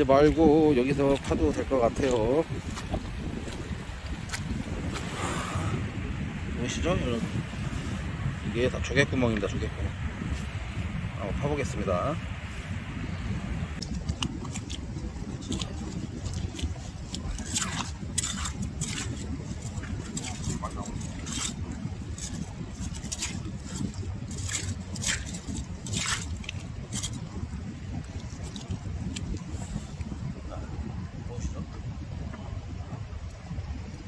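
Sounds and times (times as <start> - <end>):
hoe scraping shells and grit: 14.0 - 27.4.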